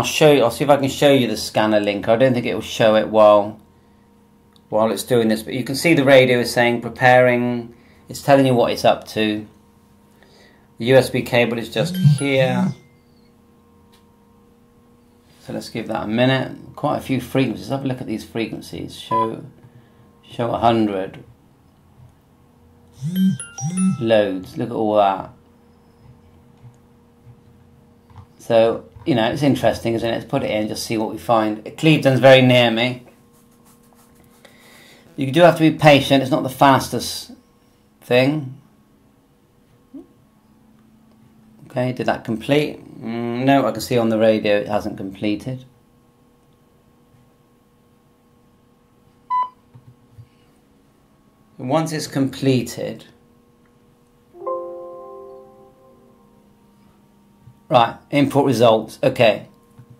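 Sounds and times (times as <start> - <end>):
faint steady hum: 0.0 - 59.9
chiming jingle: 11.8 - 12.9, 23.0 - 24.6, 54.4 - 56.2
short electronic beep: 11.8 - 12.9, 19.1 - 19.4, 23.0 - 24.5.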